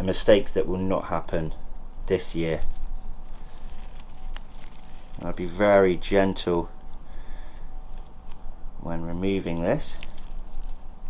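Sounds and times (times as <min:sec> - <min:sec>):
dry leaves rustling: 0:00.0 - 0:08.5, 0:09.2 - 0:11.0.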